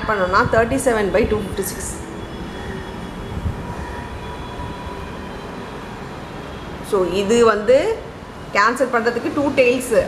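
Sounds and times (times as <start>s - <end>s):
steady rumbling noise: 0.0s - 5.0s.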